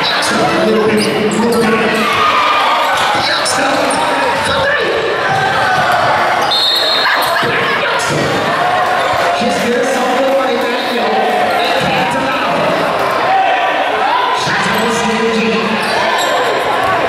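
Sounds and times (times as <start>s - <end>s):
voices echoing in hall: 0.0s - 17.0s.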